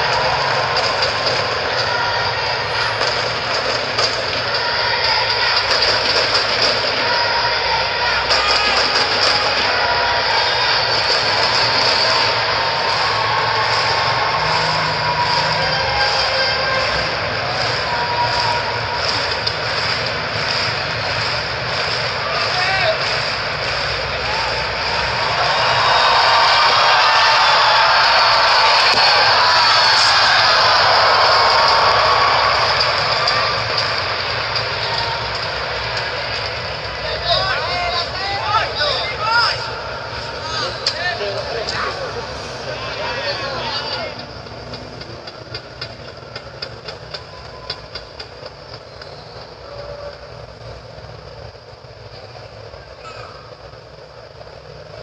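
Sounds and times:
crowd rhythmic clapping: 0.0s - 53.0s
din of many voices: 0.0s - 55.0s.

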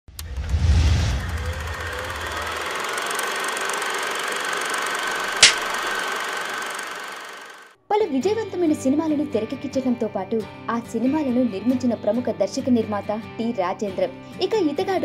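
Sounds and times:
faint whine: 0.6s - 3.0s
sharp click: 5.4s - 5.8s.

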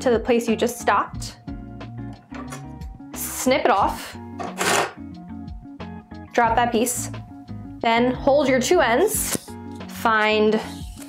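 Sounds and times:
soft background music: 0.0s - 11.0s
scissors snipping yarn: 9.2s - 10.0s.

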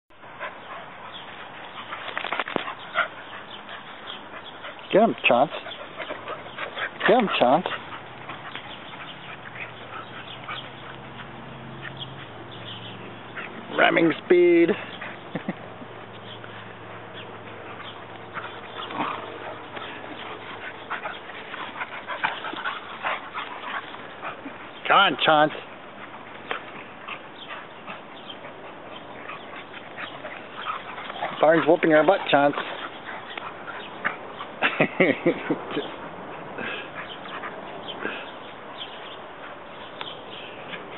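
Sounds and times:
dogs vocalizing: 0.2s - 40.9s
dogs scuffling: 0.7s - 40.9s.

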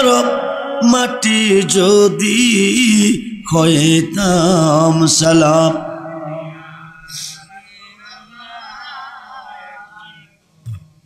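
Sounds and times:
man chanting over loudspeaker: 0.0s - 10.2s.

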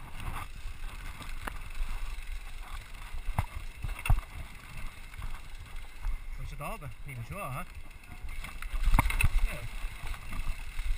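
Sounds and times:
bike rattling: 0.0s - 10.9s
bike tyres rumbling on dirt: 0.0s - 10.9s.

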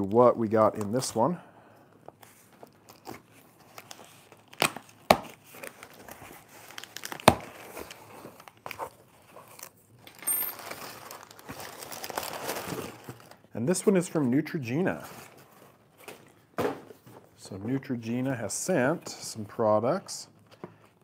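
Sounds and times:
packing paper crinkling: 2.2s - 13.5s.

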